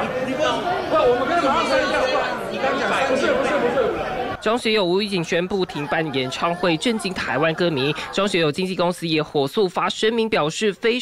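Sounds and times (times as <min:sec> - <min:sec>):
people arguing heatedly: 0:00.0 - 0:11.0.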